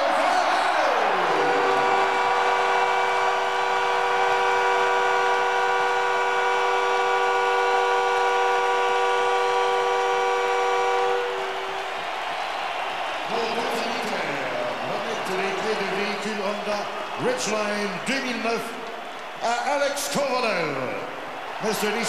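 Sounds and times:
crowd cheering: 0.0s - 22.0s
arena horn chord: 1.1s - 11.9s.

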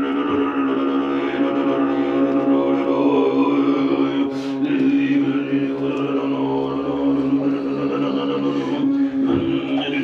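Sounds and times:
low drone with overtones: 0.0s - 10.0s.

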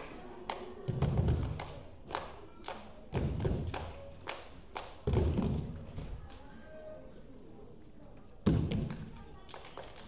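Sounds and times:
sharp hand claps: 1.4s - 5.0s.

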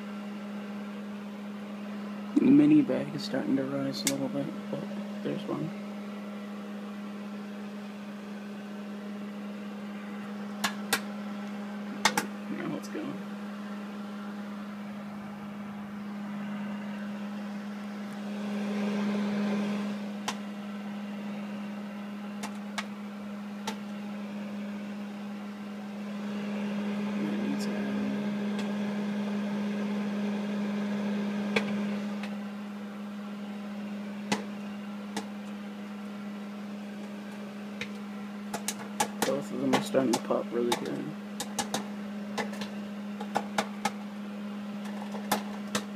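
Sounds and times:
microwave oven humming: 0.0s - 45.9s
popcorn popping: 10.5s - 11.1s, 12.0s - 12.4s, 22.3s - 24.0s, 34.2s - 35.6s, 36.9s - 44.0s, 44.8s - 45.9s.

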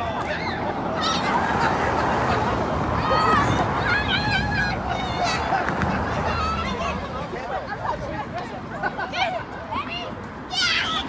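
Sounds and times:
children shrieking and shouting: 0.0s - 8.2s, 8.8s - 11.0s
babble of voices: 0.0s - 11.0s.

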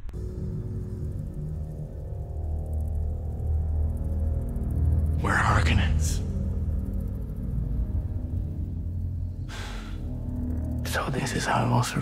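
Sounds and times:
low steady drone: 0.0s - 12.0s
short breath: 9.5s - 10.0s.

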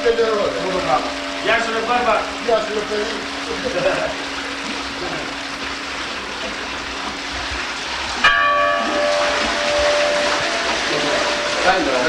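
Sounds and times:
church bell ringing: 0.0s - 5.9s, 8.2s - 12.0s.

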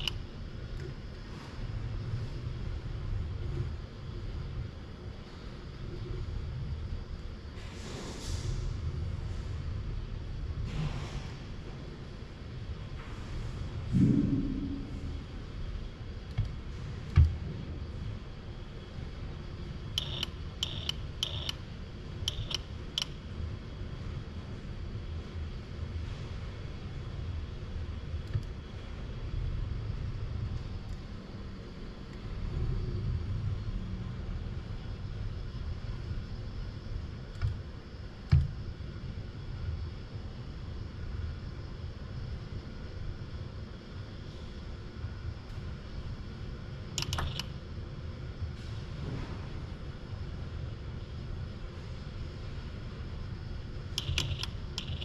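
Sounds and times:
scattered clicks: 0.0s - 0.9s, 16.2s - 17.4s, 19.9s - 21.6s, 22.2s - 23.2s, 28.2s - 28.6s, 37.3s - 37.6s, 46.9s - 47.6s, 53.9s - 55.0s
low machine rumble: 0.0s - 55.0s
sharp high-pitched ticks: 20.0s - 21.6s, 22.2s - 23.2s, 54.0s - 55.0s.

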